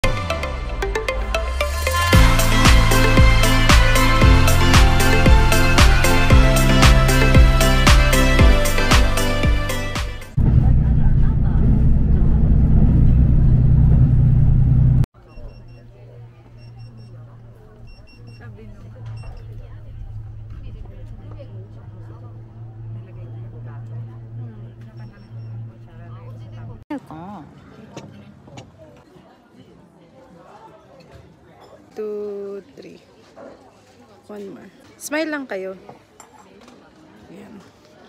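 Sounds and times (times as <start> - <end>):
vehicle engine rumble: 10.2 - 26.9
short high beeps: 15.2 - 15.9, 17.8 - 19.6, 24.8 - 25.8
faint voices: 15.2 - 38.0.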